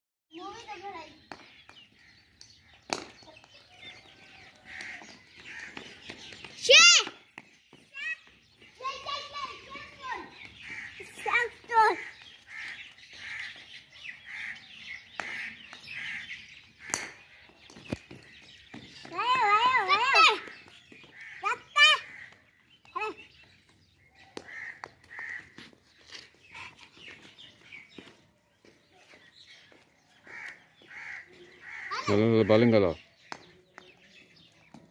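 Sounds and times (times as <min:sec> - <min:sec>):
crows cawing: 0:03.7 - 0:06.0, 0:10.6 - 0:17.3, 0:20.2 - 0:22.5, 0:24.2 - 0:25.7, 0:30.1 - 0:32.5
young children calling out: 0:07.9 - 0:10.4, 0:19.1 - 0:20.5.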